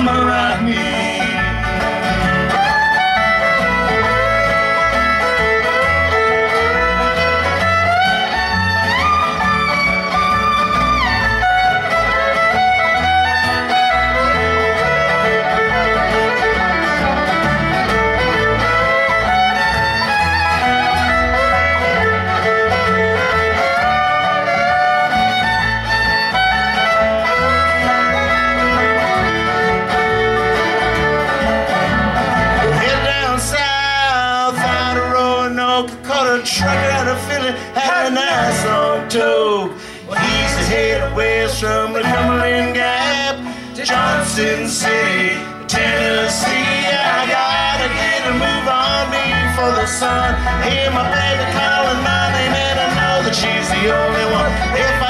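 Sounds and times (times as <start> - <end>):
acoustic guitar: 0.0 - 55.0
banjo: 0.0 - 55.0
bass: 0.0 - 55.0
fiddle melody: 0.0 - 55.0.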